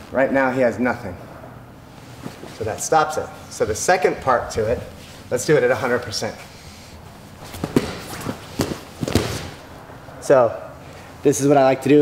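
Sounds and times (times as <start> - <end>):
bodies thudding on foam mat: 7.4 - 9.7.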